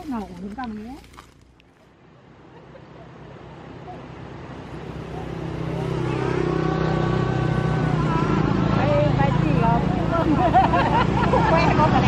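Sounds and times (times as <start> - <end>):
women's voices: 0.0 - 1.0, 7.9 - 12.0
vehicle engine running: 3.0 - 12.0.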